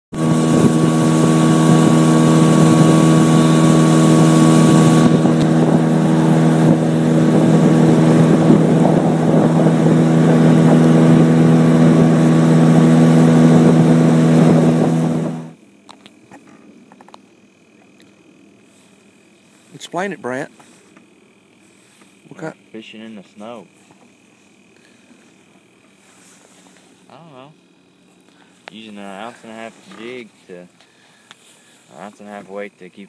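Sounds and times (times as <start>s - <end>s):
boat engine running: 0.1s - 15.6s.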